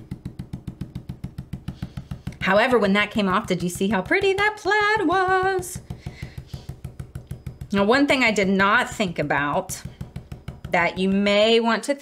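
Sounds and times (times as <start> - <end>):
stencil brush dull taps: 0.0 - 11.3.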